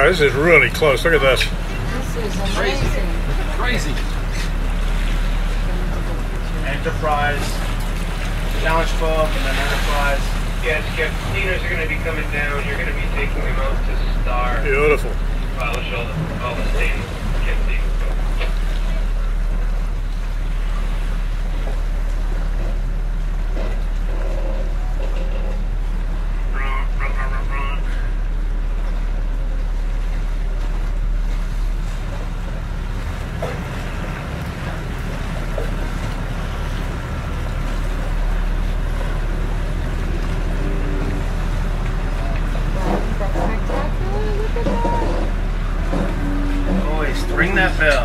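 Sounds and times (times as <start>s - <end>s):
voices: 0.0s - 19.6s, 24.4s - 28.4s, 33.4s - 48.0s
wind and water rumble: 0.0s - 48.0s.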